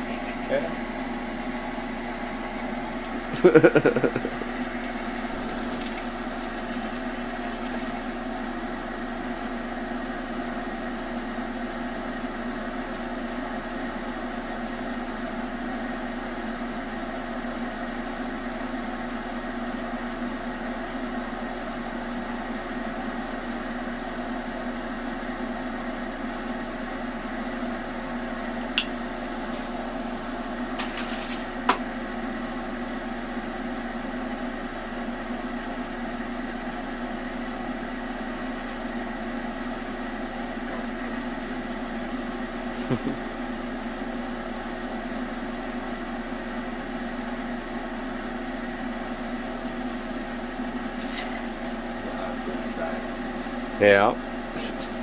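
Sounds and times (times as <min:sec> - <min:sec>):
bench torch burning: 0:00.0 - 0:55.0
exhaust fan: 0:00.0 - 0:55.0.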